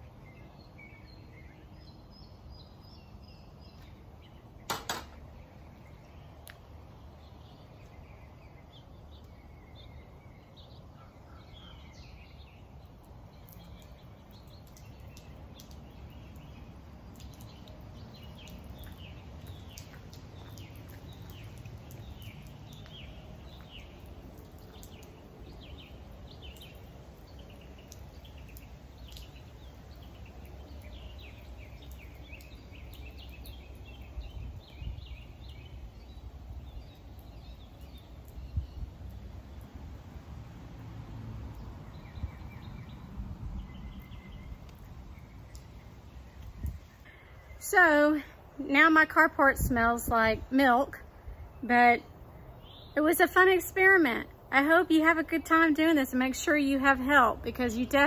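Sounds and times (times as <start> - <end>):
birds chirping: 0.0 - 39.8, 41.4 - 58.0.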